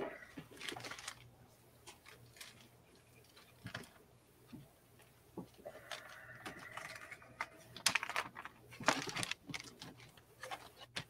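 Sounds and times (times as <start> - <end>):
faint hum: 0.0 - 11.0
plastic coin packaging crinkling: 0.5 - 1.3, 5.7 - 11.0.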